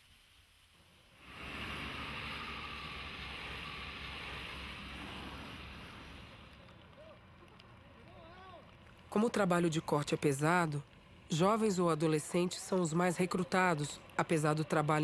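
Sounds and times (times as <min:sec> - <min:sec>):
heavy vehicle passing: 0:01.2 - 0:06.7.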